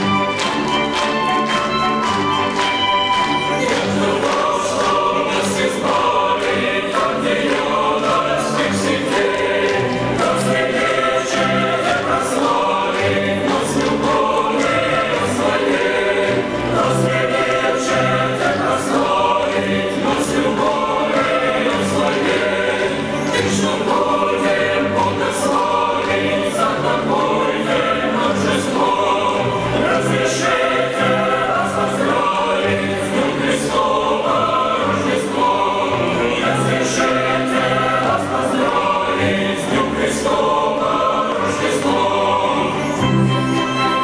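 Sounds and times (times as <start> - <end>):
choir singing a carol: 0.0 - 44.0
steady accompaniment beat: 0.0 - 44.0.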